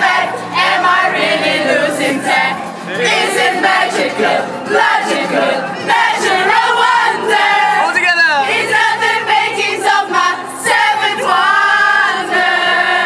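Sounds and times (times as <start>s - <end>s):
group singing in chorus: 0.0s - 13.0s
people cheering: 1.7s - 8.8s.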